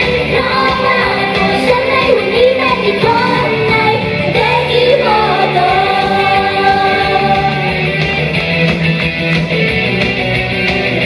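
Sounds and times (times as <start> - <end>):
woman singing pop song: 0.0 - 7.8
loud backing track: 0.0 - 11.0.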